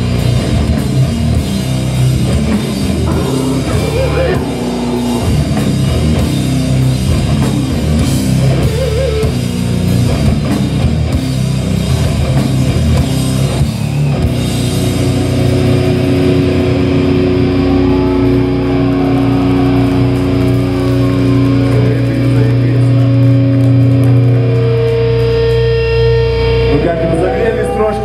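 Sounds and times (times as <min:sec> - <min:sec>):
distorted electric guitars and bass: 0:00.0 - 0:28.0
drums: 0:00.0 - 0:28.0.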